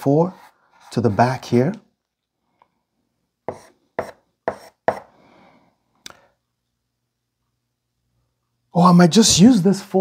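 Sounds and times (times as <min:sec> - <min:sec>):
chalk scraping: 0:00.0 - 0:01.6, 0:03.5 - 0:05.1
chalk tapping on blackboard: 0:03.4 - 0:05.1.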